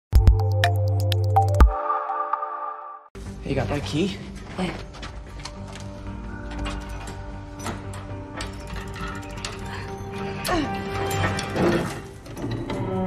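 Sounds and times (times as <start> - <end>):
orchestral film music: 0.8 - 13.0
lock mechanism clicking and grinding: 4.7 - 13.0.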